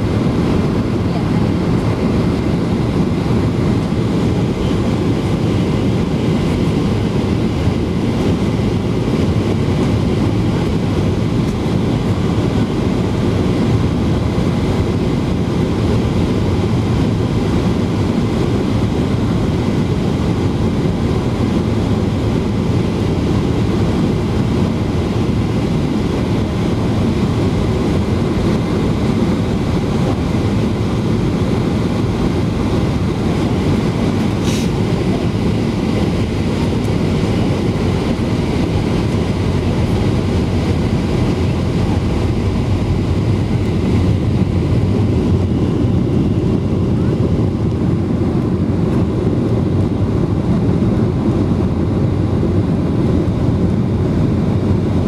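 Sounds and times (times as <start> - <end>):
airplane cabin roar: 0.0 - 55.0.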